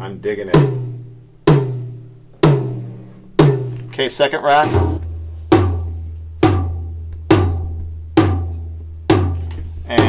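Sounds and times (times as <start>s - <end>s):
rack tom drum hits: 0.0s - 10.0s.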